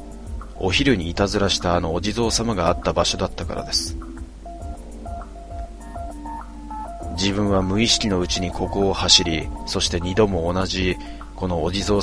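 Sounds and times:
slow beep-like electronic melody: 0:03.4 - 0:11.2.

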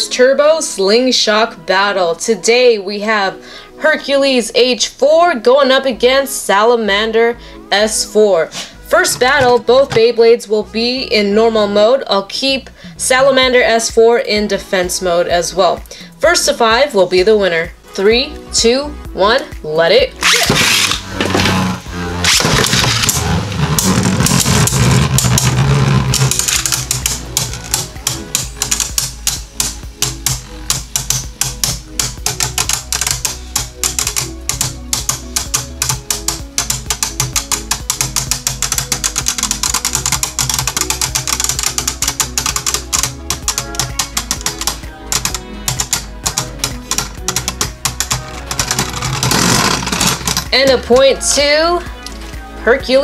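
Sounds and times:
background music: 0:00.0 - 0:53.0.

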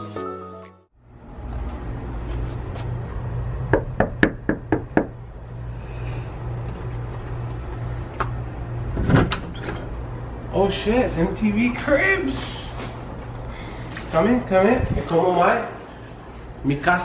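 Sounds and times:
steady low hum: 0:01.0 - 0:17.0
fist knocking on door: 0:03.7 - 0:05.2.

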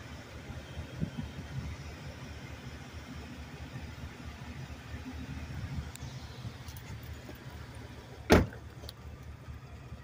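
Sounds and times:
car door shutting: 0:08.2 - 0:08.8.

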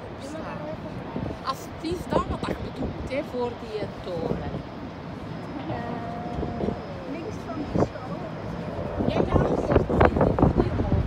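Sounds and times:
distant city traffic rumble: 0:00.0 - 0:11.0.

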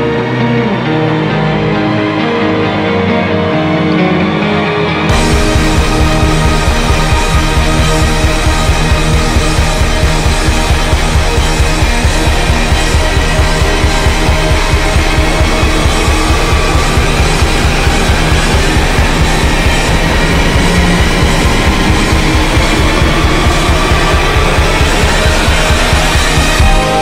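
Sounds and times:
instrumental alternative rock band: 0:00.0 - 0:27.0
fast-pulsing bass line: 0:04.6 - 0:27.0.

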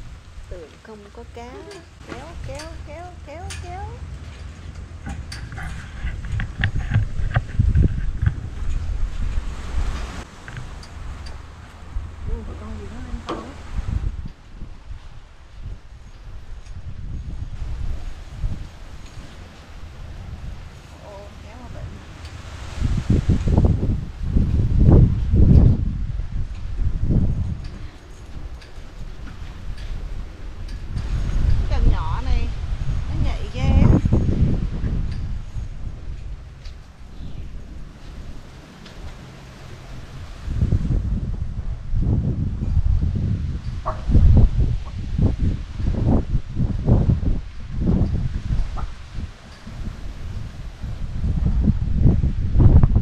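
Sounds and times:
wind buffeting microphone: 0:00.0 - 0:53.0
voices: 0:00.5 - 0:04.1, 0:12.2 - 0:13.6, 0:20.9 - 0:22.0, 0:31.7 - 0:34.0.

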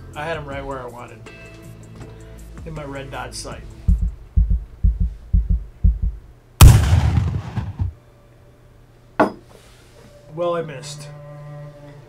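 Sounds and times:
heartbeat thumps: 0:03.8 - 0:07.9
loud gunshot: 0:06.6 - 0:08.0.

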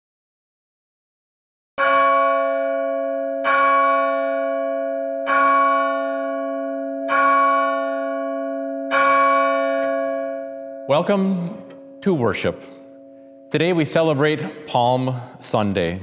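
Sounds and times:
church bell tolling: 0:01.8 - 0:16.0.

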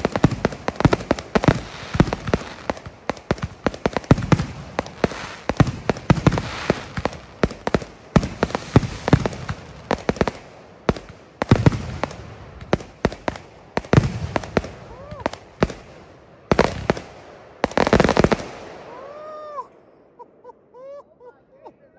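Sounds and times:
fireworks shells bursting: 0:00.0 - 0:10.4
fireworks crackle: 0:00.0 - 0:19.3.

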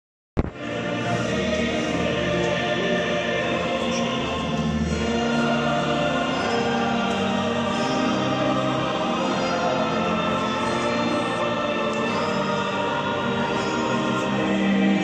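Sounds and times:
choir singing held notes: 0:00.5 - 0:15.0.

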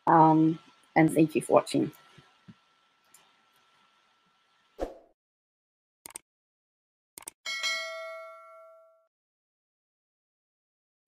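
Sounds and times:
bright bell chime: 0:07.5 - 0:09.1.

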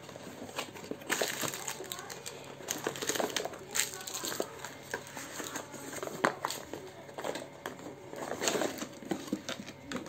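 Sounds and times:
plastic and cardboard crinkling: 0:00.0 - 0:10.0.

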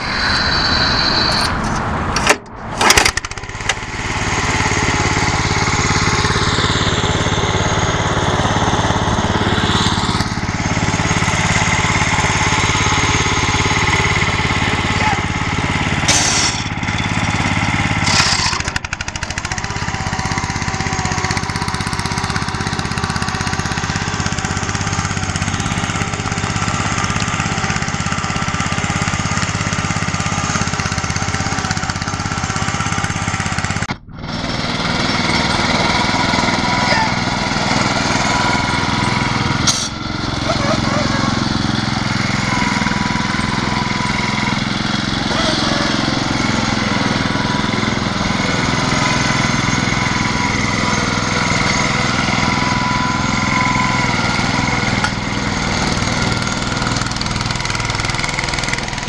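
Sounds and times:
lawn tractor engine under load: 0:00.0 - 0:59.0.

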